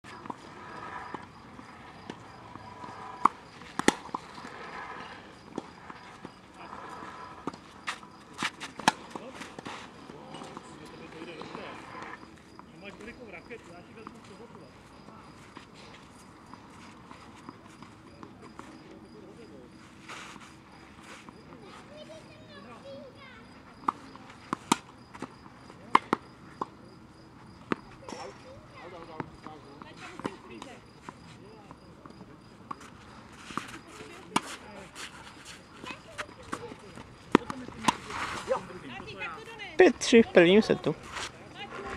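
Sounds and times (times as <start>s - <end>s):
tennis ball hitting rackets: 0.1s - 13.1s, 23.8s - 39.5s
people's voices: 27.8s - 41.9s.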